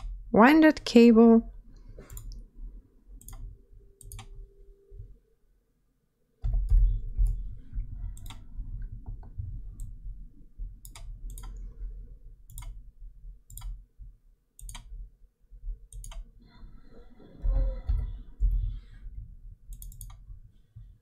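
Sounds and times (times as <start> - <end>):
mouse and keyboard clicks: 2.1 - 2.4, 3.2 - 4.4, 8.2 - 8.4, 10.8 - 11.6, 12.5 - 12.8, 14.6 - 14.9, 19.7 - 20.2
low steady rumble: 6.5 - 14.3.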